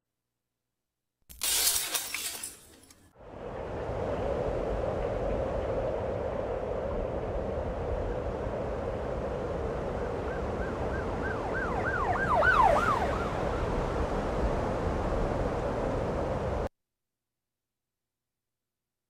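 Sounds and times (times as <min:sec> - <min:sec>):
steady noisy rumble with hum: 0:03.2 - 0:10.6
siren yelping: 0:10.2 - 0:13.7.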